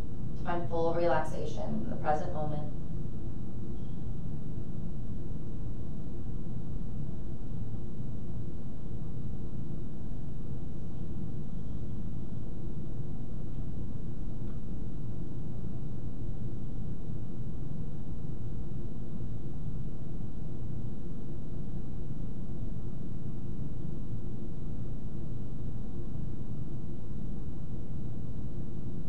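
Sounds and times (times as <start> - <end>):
steady low rumbling: 0.0 - 29.0.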